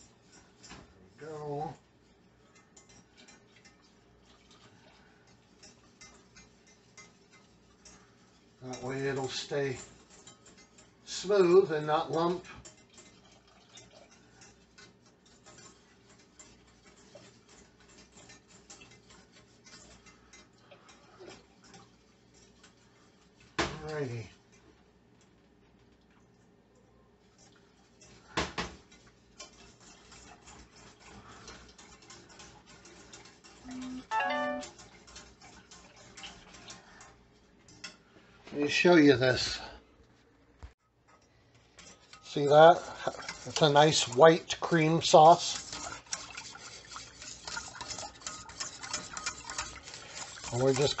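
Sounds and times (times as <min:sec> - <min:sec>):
whisk ticking in metal saucepan: 0:00.0 - 0:25.4, 0:27.2 - 0:38.0, 0:41.2 - 0:51.0
whisk knocking against pan: 0:05.3 - 0:23.8, 0:27.4 - 0:33.6, 0:34.6 - 0:38.0, 0:41.8 - 0:51.0.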